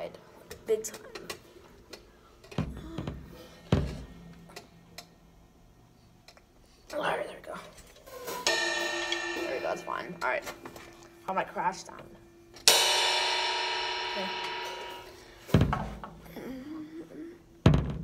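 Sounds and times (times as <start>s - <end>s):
cymbal ringing: 8.1s - 16.3s
drum hits: 8.2s - 11.3s, 12.6s - 16.2s.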